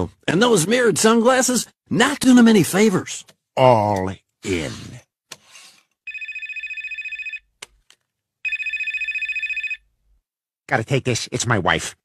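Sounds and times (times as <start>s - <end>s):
mobile phone ringing: 6.1s - 7.5s, 8.4s - 9.9s.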